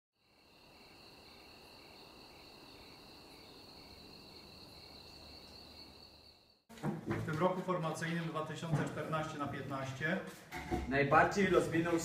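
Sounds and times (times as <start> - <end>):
insect trill: 0.2 - 6.6
soft insect chirp: 0.2 - 6.6.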